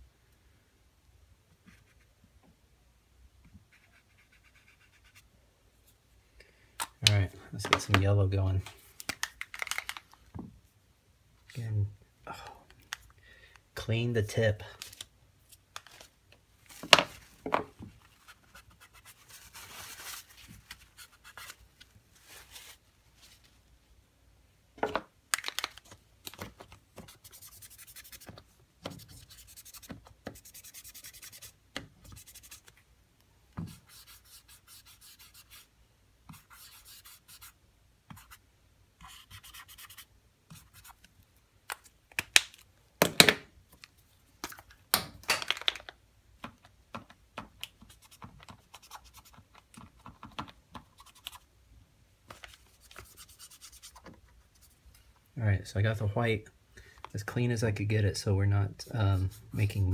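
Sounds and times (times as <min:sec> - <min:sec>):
marker tip scratching: 0:03.7 - 0:05.2, 0:27.0 - 0:32.7, 0:39.0 - 0:41.0.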